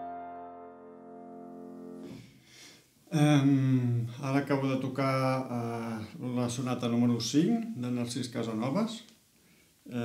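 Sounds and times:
piano chord ringing: 0:00.0 - 0:02.2
faint room sound: 0:00.0 - 0:10.0.

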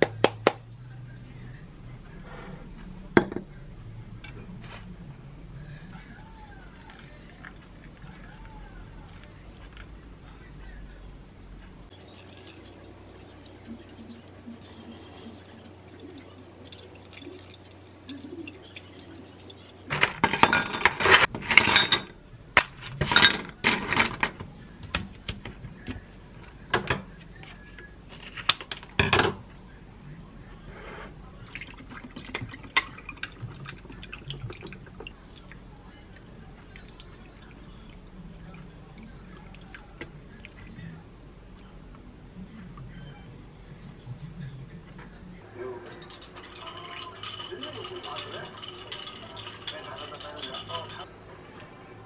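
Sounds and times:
coffee dripping into carafe: 0:11.9 - 0:20.0, 0:31.5 - 0:40.6
ice cubes clattering into glass: 0:45.9 - 0:51.0.

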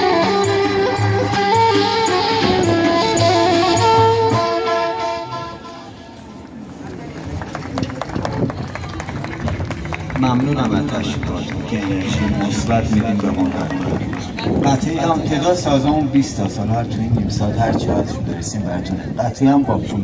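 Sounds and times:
music from outdoor stage: 0:00.0 - 0:06.2.

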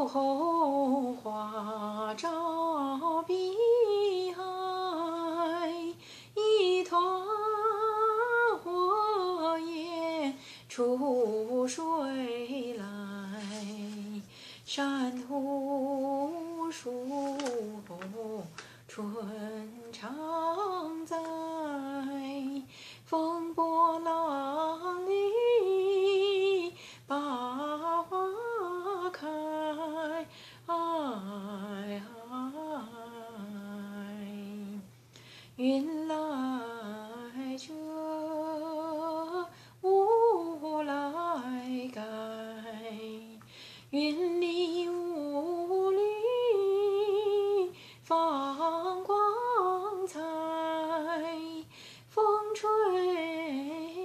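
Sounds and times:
woman singing folk song unaccompanied: 0:00.0 - 0:54.0.

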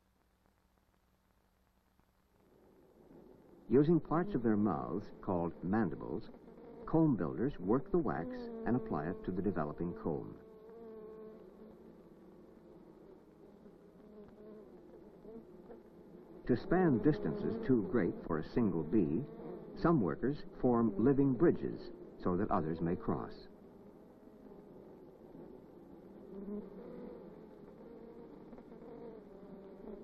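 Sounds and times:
honey bees buzzing: 0:02.4 - 0:30.0.

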